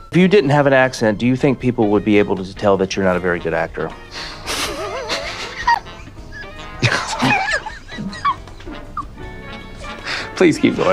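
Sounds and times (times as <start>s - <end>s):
background music: 0.0s - 10.9s
man laughing: 4.2s - 9.2s.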